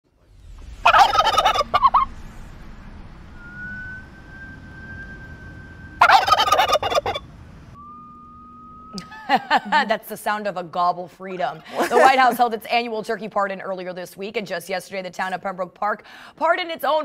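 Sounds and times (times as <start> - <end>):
turkey gobbling: 0.8 - 2.1, 6.0 - 7.3.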